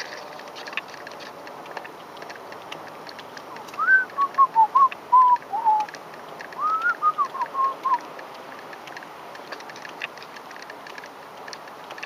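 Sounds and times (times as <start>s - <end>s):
person whistling a tune: 3.8s - 5.9s, 6.6s - 8.0s.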